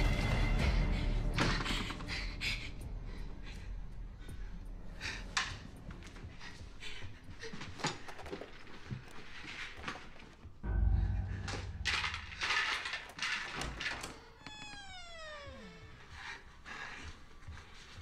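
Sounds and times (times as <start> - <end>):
horror film score: 0.0 - 9.2, 9.8 - 18.0
heavy low impact with held tone: 10.6 - 12.7.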